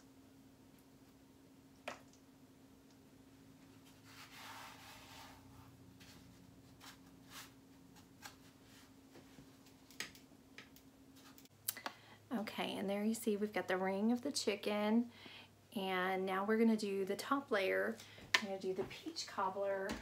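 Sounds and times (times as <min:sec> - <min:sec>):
steady faint hum: 0:00.0 - 0:20.0.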